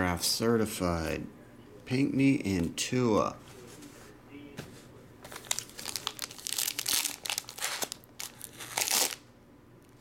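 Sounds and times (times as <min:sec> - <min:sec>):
foil wrapper crinkling: 0:05.3 - 0:09.2
foil wrapper ripping open: 0:05.4 - 0:09.2.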